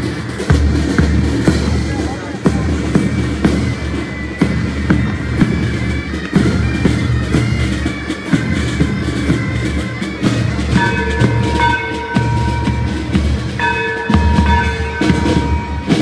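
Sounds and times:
marching band playing: 0.0s - 16.0s
steady drum beats: 0.0s - 16.0s.

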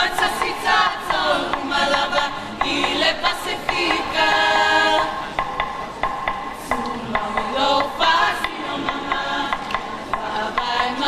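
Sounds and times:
group singing in chorus: 0.0s - 11.0s.

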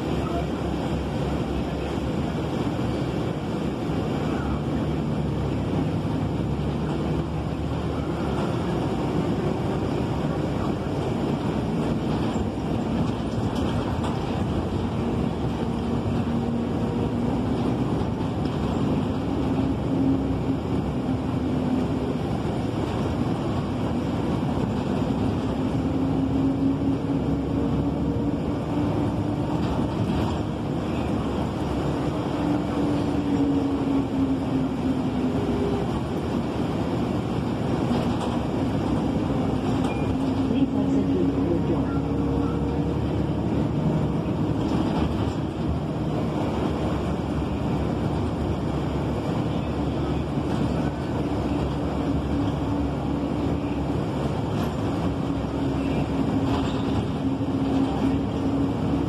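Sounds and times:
bus engine and road noise: 0.0s - 59.0s.

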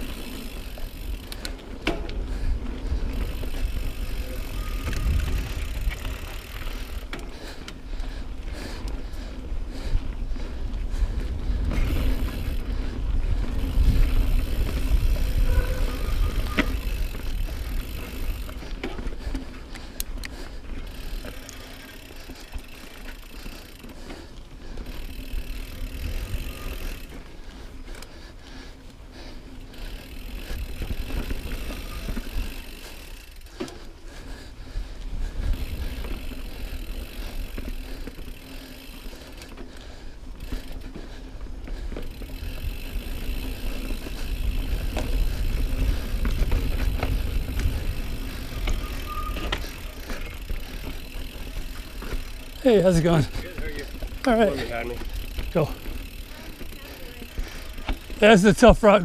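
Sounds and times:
bike clicks and rattles: 0.0s - 59.0s
bike tyre noise on dirt: 0.0s - 59.0s.

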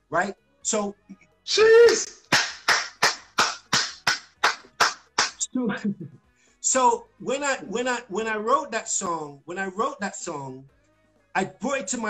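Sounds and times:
hands clapping: 1.8s - 5.5s.

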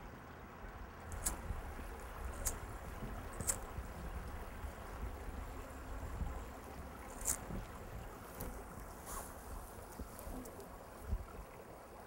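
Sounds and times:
wind buffeting microphone: 1.2s - 11.5s.

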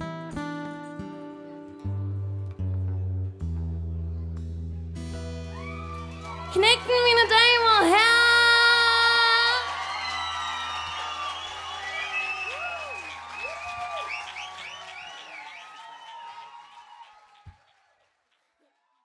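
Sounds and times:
acoustic guitar and band: 0.0s - 9.6s
crowd cheering and applauding: 5.4s - 19.0s
woman singing: 6.5s - 9.6s.

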